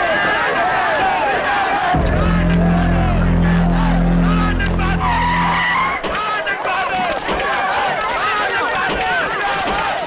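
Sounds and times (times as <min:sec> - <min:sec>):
car horns blaring: 0:02.0 - 0:06.0.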